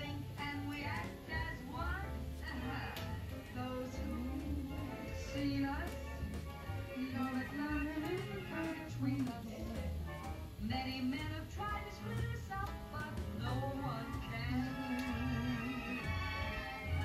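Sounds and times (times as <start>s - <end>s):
orchestral music on television: 0.0s - 17.0s.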